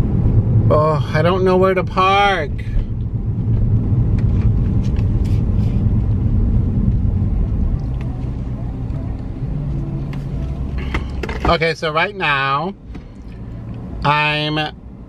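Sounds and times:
car engine and road noise inside: 0:00.0 - 0:15.0.

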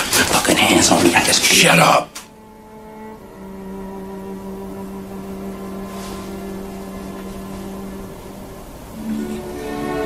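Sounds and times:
faint hissy swell: 0:00.0 - 0:10.0.

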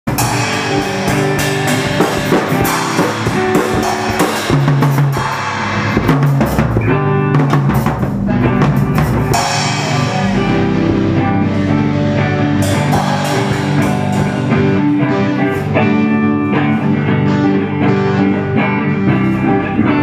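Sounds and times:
cymbal crashes: 0:00.1 - 0:06.6, 0:09.3 - 0:15.0
drum kit played hard: 0:00.1 - 0:20.0
electric guitar sustained notes: 0:00.1 - 0:20.0.

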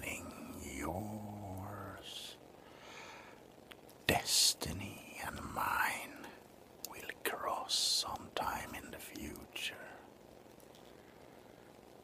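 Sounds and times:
man whispering: 0:00.0 - 0:02.5, 0:04.0 - 0:10.2.

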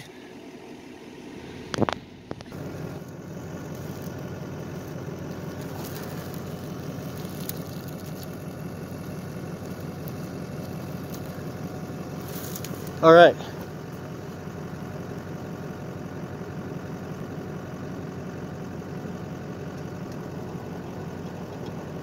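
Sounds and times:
diesel engine idling: 0:00.0 - 0:22.0.

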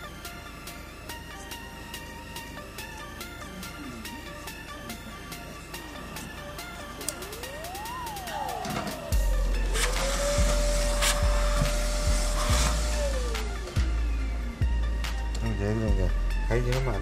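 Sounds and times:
electronic music with sliding tone: 0:00.0 - 0:17.0
vacuum cleaner running: 0:07.2 - 0:14.2.

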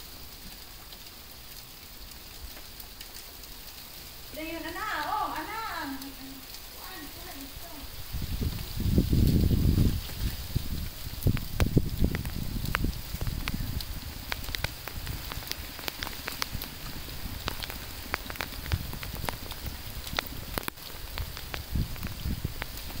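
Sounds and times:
wet snow pattering: 0:00.0 - 0:23.0
low rumble on microphone: 0:07.9 - 0:23.0
sharp ticks of snow: 0:10.0 - 0:23.0.

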